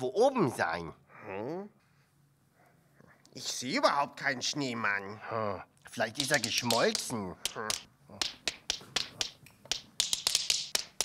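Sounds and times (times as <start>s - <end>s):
tap shoes tapping: 6.2s - 11.0s.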